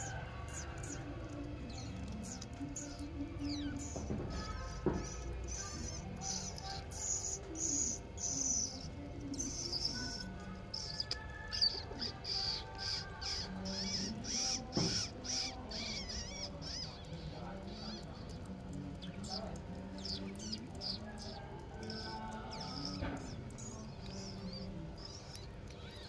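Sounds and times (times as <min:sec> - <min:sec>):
mongooses squeaking chirps: 0:00.0 - 0:26.0.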